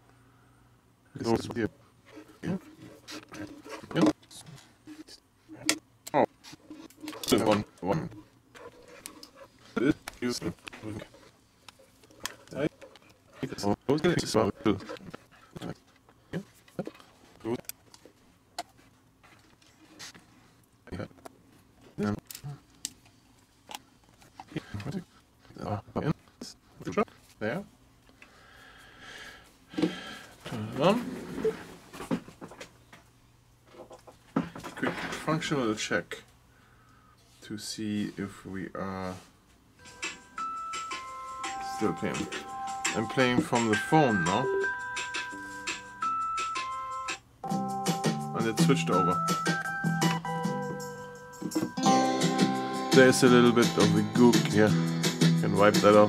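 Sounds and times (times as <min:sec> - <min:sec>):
music from a bluetooth speaker: 0:39.8 - 0:56.0.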